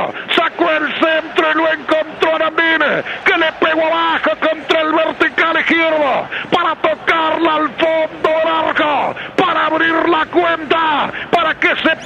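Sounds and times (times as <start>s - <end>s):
man commentating excitedly: 0.0s - 12.0s.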